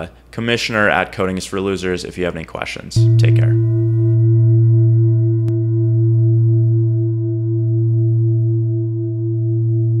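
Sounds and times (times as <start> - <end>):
low droning tone: 3.0 - 10.0.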